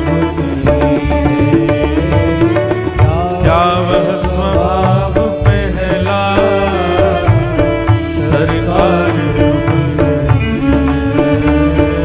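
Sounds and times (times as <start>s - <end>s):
light regular percussion beat: 0.0s - 12.0s
man singing into a microphone: 0.0s - 12.0s
sustained accompaniment: 0.0s - 12.0s.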